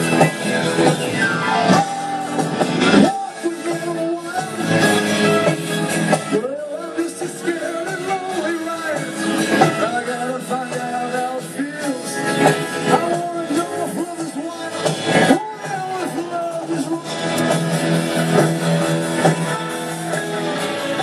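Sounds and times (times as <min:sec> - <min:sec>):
guitar: 0:00.0 - 0:21.0
person singing: 0:00.0 - 0:21.0
rock band over a pa: 0:00.0 - 0:21.0.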